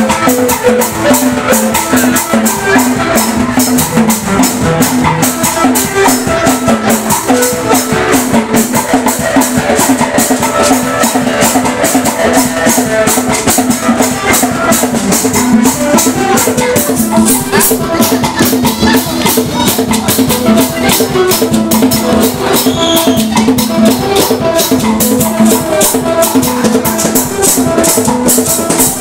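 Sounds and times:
hand drums: 0.0 - 29.0
held keyboard notes: 0.0 - 29.0.

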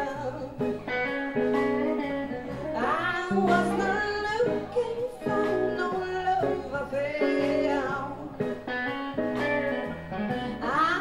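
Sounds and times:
woman singing into microphone: 0.0 - 0.7, 2.7 - 8.5, 10.4 - 11.0
band accompaniment: 0.0 - 11.0.

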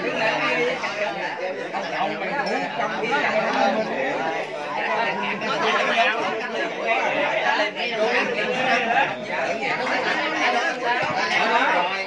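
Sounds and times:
overlapping conversation: 0.0 - 12.0.

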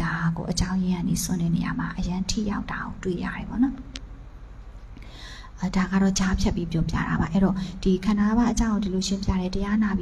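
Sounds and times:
woman talking into a microphone: 0.0 - 3.9, 5.6 - 10.0.

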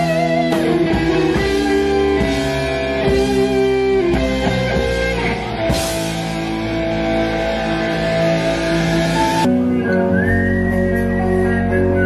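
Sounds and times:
bass and keyboard backing: 0.0 - 12.0
distorted electric guitar lead: 0.0 - 12.0.

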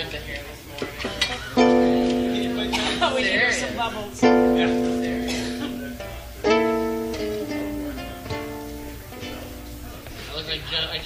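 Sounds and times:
ukulele chord and picked notes: 1.4 - 10.0.

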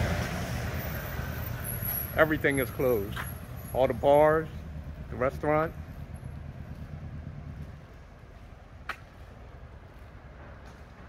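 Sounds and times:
vehicle engine hum: 0.0 - 11.0.

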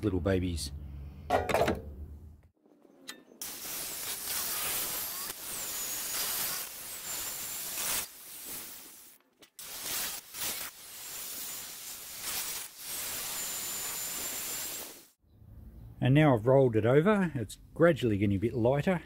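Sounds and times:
angle grinder cutting copper pipe: 3.4 - 15.2.

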